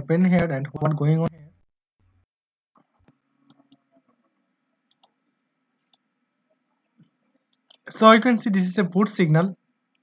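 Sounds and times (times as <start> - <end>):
computer mouse clicks: 2.8 - 4.2, 4.9 - 5.2, 5.8 - 6.1, 7.0 - 7.9.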